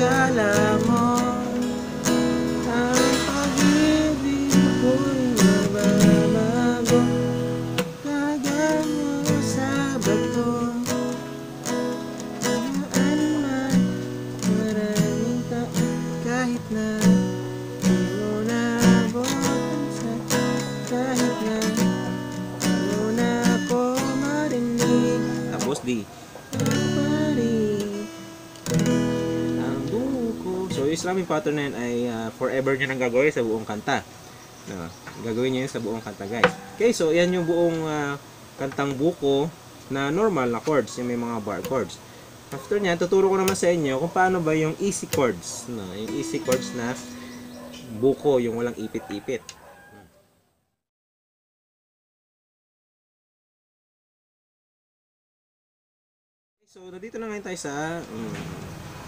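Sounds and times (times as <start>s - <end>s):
man singing: 0.0s - 11.4s, 12.4s - 26.0s, 26.6s - 32.7s, 44.4s - 47.3s
acoustic guitar strumming: 0.0s - 34.0s, 36.3s - 48.4s.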